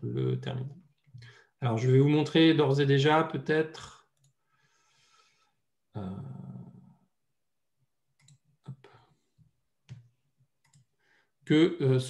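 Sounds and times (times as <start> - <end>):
computer mouse clicks: 8.2 - 8.5, 9.9 - 10.9.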